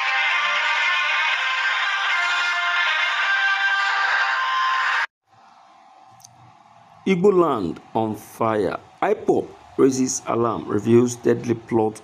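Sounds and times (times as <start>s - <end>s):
electronic music with held tones: 0.0s - 5.0s.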